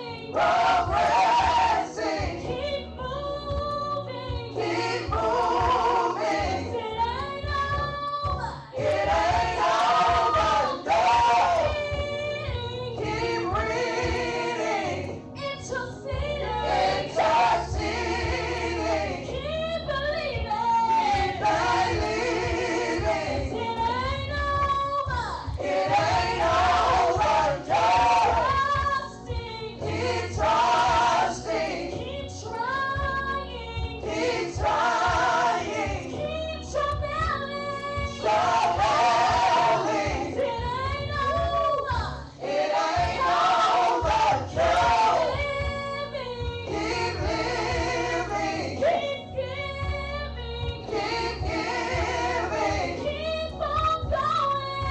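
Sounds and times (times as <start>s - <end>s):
woman singing gospel song: 0.0s - 54.9s.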